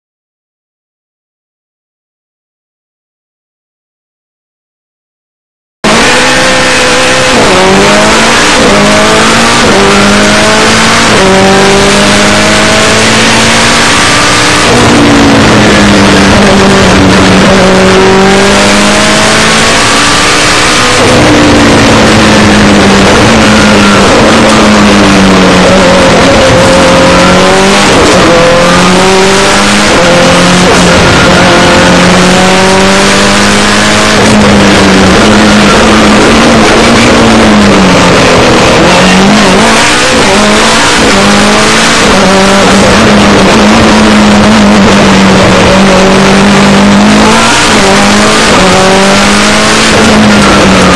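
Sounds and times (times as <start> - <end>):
rally car engine revving: 5.8 - 50.9.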